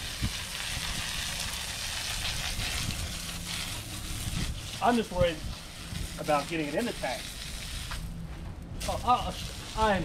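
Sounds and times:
hose spraying water: 0:00.0 - 0:08.1, 0:08.8 - 0:10.0.

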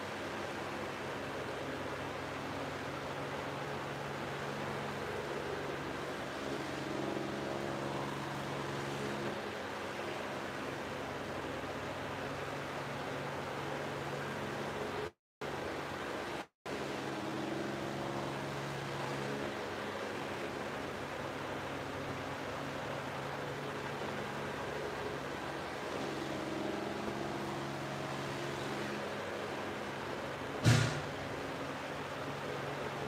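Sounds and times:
fan hiss and hum: 0:00.0 - 0:33.0.

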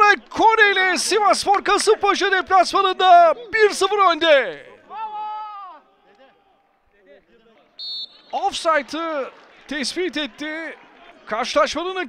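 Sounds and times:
referee's whistle blast: 0:07.8 - 0:08.6.

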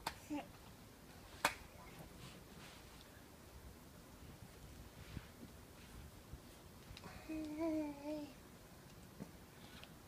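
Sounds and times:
hand slapping bare thigh: 0:01.4 - 0:01.7.

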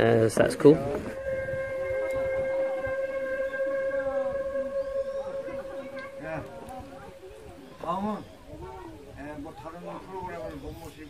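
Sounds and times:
bamboo flute long note: 0:00.6 - 0:08.6.

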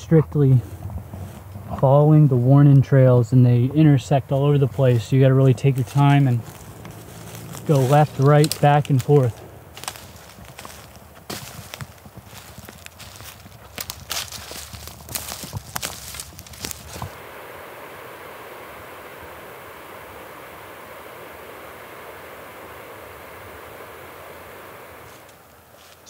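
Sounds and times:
footsteps crunching dry leaves: 0:04.3 - 0:26.0.

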